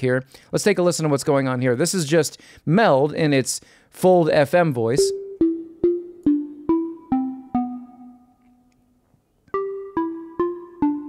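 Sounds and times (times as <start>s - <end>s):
plucked synthesizer melody: 5.0s - 8.6s, 9.5s - 11.0s.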